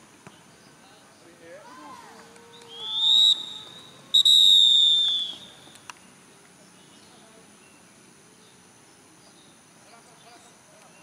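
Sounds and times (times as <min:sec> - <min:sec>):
referee's whistle blasts: 0:02.7 - 0:05.6.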